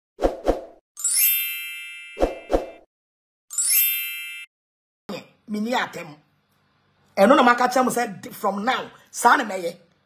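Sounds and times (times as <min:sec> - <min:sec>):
bright chime: 0:01.0 - 0:02.8, 0:03.5 - 0:04.5.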